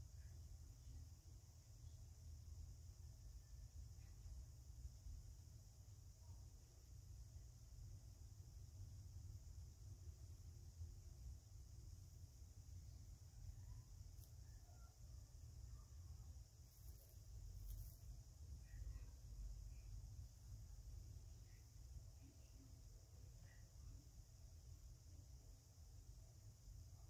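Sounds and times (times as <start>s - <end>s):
faint room hum: 0.0s - 27.0s.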